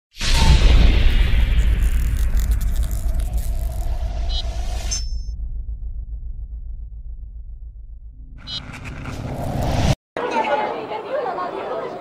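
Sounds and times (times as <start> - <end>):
people chattering: 10.2 - 12.0.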